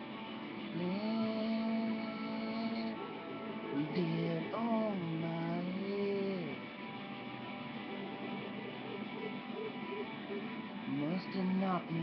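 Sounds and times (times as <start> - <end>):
guitar playing: 0.0 - 12.0
person singing: 0.7 - 3.0, 3.7 - 6.6.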